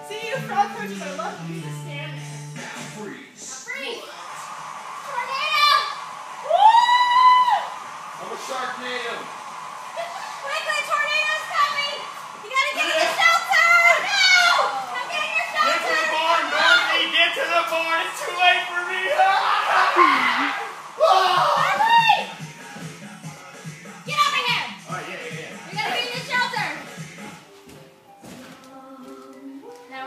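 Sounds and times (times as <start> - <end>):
music: 0.0 - 4.6, 9.2 - 30.0
children shouting and squealing: 10.0 - 17.1, 19.0 - 22.4.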